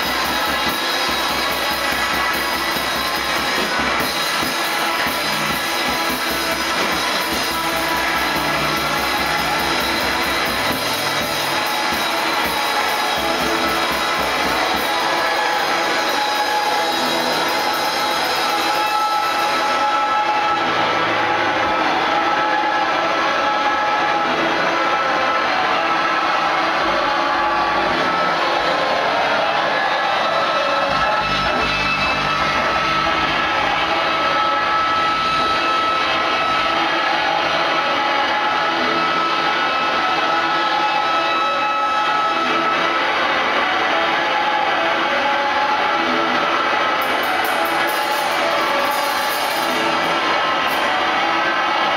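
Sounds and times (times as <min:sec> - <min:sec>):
noise-rock band playing: 0:00.0 - 0:22.8, 0:27.4 - 0:39.9.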